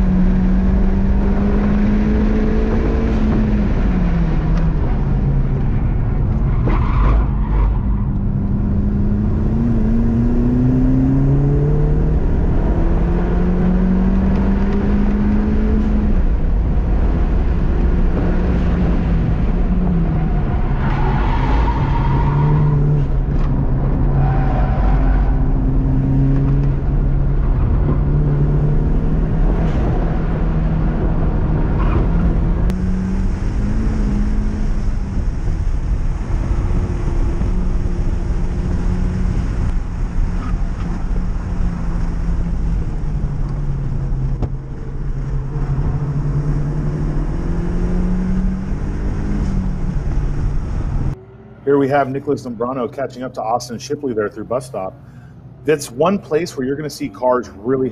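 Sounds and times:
car engine revving: 0:00.0 - 0:57.5
road and tyre noise: 0:00.0 - 0:57.9.

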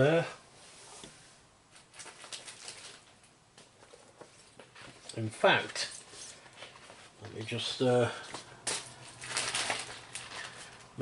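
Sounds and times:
packaging rustling and crinkling: 0:01.7 - 0:11.0.

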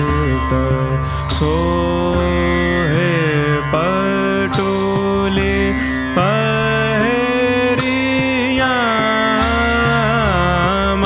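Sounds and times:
devotional song with sliding notes: 0:00.0 - 0:11.0.

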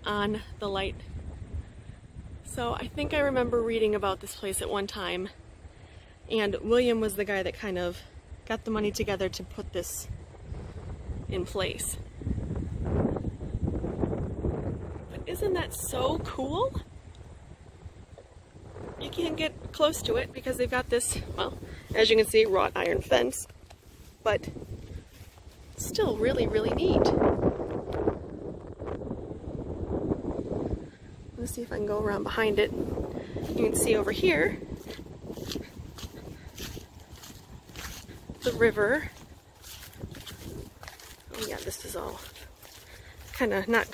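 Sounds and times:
wind buffeting microphone: 0:00.0 - 0:43.9
footsteps in dry grass: 0:20.0 - 0:26.7, 0:32.2 - 0:43.9.

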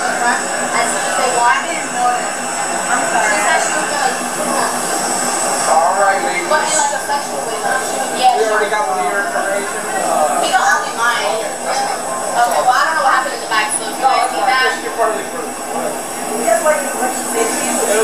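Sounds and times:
mechanical background hum: 0:00.0 - 0:18.0
people talking at once: 0:00.0 - 0:18.0.

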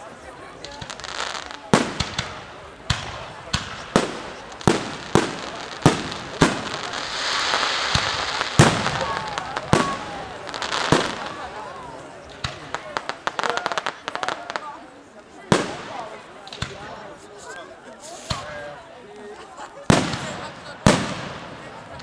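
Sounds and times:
dense crackling hiss: 0:00.0 - 0:18.6
firework shells bursting: 0:00.8 - 0:11.3.

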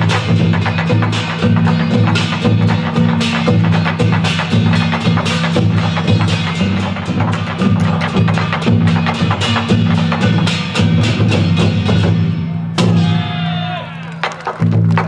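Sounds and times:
barrel drums playing percussion: 0:00.0 - 0:15.0.

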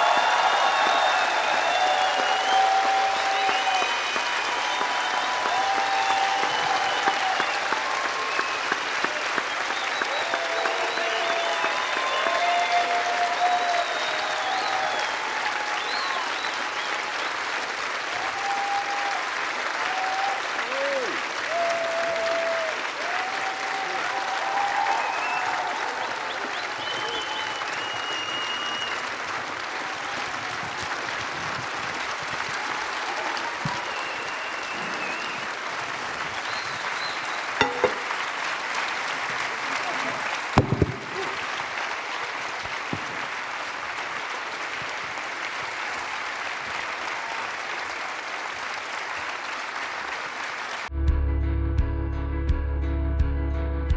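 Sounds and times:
voices calling out and cheering: 0:00.0 - 0:16.6
audience applauding: 0:00.0 - 0:50.9.

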